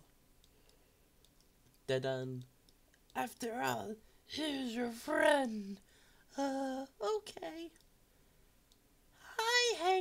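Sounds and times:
computer mouse clicks: 0:00.4 - 0:01.8
person speaking: 0:01.8 - 0:07.8, 0:09.2 - 0:10.0.

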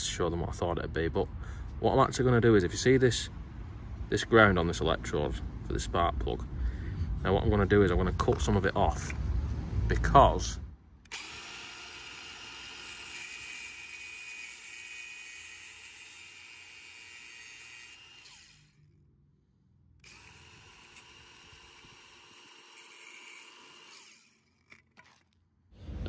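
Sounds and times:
small power tool cutting metal: 0:11.1 - 0:18.9, 0:20.0 - 0:25.4.

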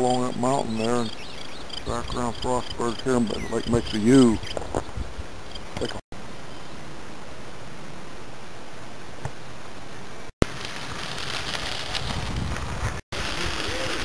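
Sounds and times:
wind noise on microphone: 0:00.0 - 0:06.0, 0:11.5 - 0:14.0.

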